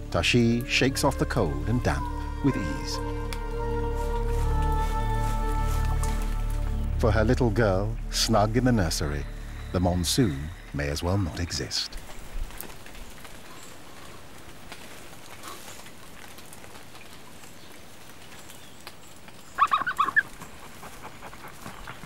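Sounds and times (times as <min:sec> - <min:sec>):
rain hissing in forest: 0:00.0 - 0:22.0
bird calls: 0:13.4 - 0:14.2, 0:17.4 - 0:22.0.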